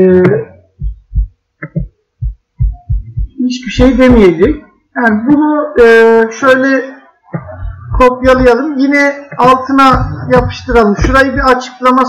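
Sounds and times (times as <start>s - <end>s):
dull low thumps: 0.2s - 4.6s, 7.4s - 8.7s, 9.3s - 11.6s.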